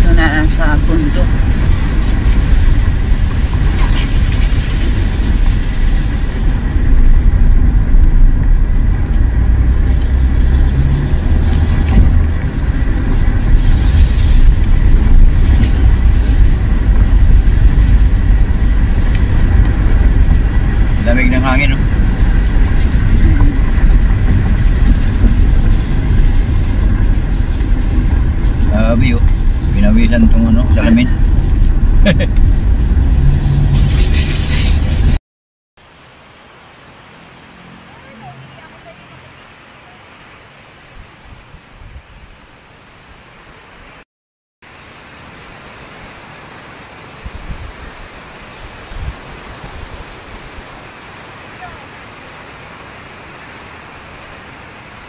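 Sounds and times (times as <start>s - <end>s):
car engine and tyres rumbling: 0.0s - 35.2s, 35.8s - 44.0s.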